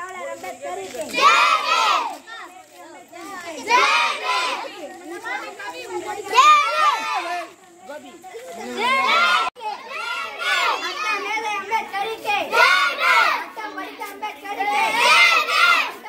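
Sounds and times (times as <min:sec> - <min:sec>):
children calling out together: 0:00.0 - 0:16.0.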